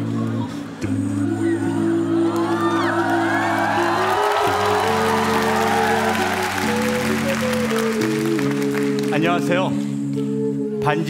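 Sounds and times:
stage music with held chords: 0.0 - 11.0
audience cheering and clapping: 2.2 - 9.2.

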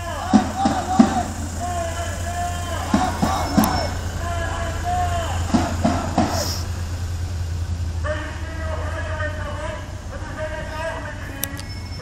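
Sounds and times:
crowd voices: 0.0 - 7.1
van engine rumbling: 0.0 - 12.0.

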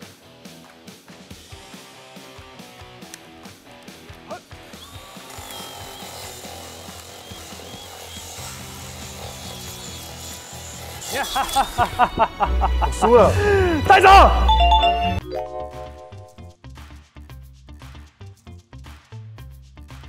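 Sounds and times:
power tools whining on wood: 4.5 - 13.8
background music: 10.8 - 17.0.

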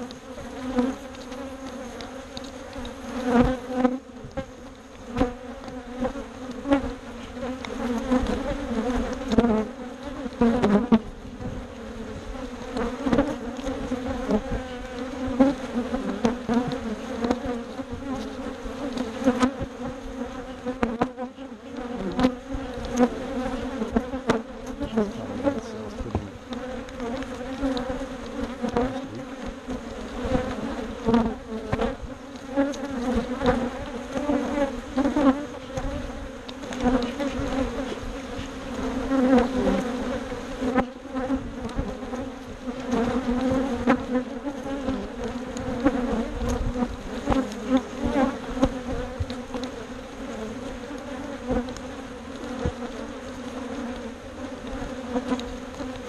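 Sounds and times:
clicks and knocks of hive boxes: 0.0 - 56.0
honey bees buzzing: 0.0 - 56.0.

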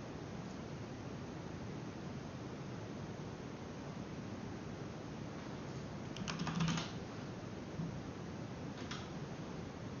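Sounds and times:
steady background hiss: 0.0 - 10.0
computer keyboard typing: 6.1 - 7.0, 8.8 - 9.1.

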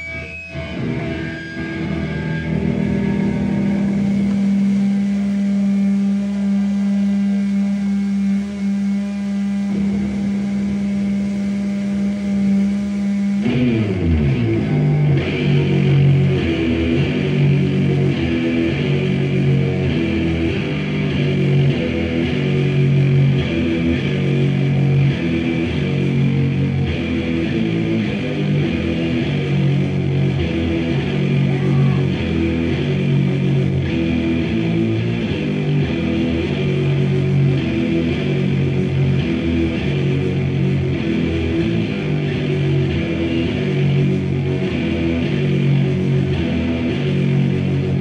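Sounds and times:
electric guitar through amplifier: 0.0 - 48.0.

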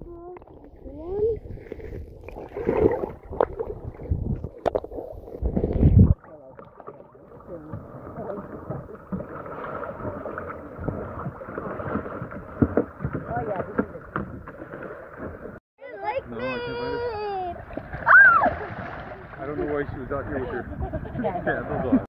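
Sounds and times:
muffled underwater rushing: 0.0 - 15.6
water lapping: 0.0 - 22.0.

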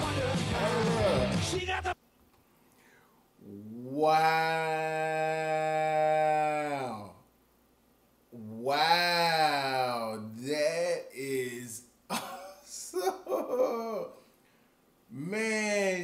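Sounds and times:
man saying ooh: 3.4 - 7.2, 8.4 - 11.8, 12.7 - 14.2, 15.1 - 16.0.

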